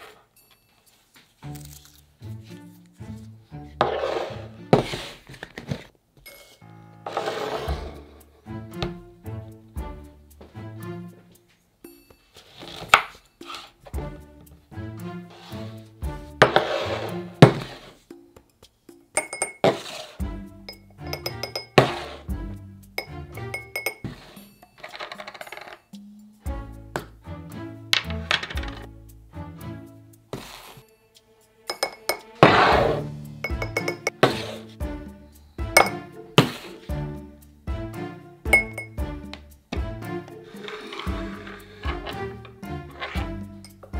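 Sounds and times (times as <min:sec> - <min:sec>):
background music: 0:00.0 - 0:05.8, 0:06.5 - 0:43.9
rustling scrapes: 0:03.8 - 0:08.3, 0:12.3 - 0:13.9, 0:15.3 - 0:15.8, 0:16.4 - 0:18.0, 0:19.6 - 0:20.2, 0:30.3 - 0:30.9, 0:32.4 - 0:33.1, 0:34.2 - 0:34.8, 0:36.4 - 0:36.9, 0:40.4 - 0:43.3
metal spoons clinking on glass: 0:19.1 - 0:19.8, 0:20.7 - 0:21.9, 0:23.0 - 0:26.1, 0:31.7 - 0:32.4, 0:33.4 - 0:34.3, 0:38.5 - 0:39.0.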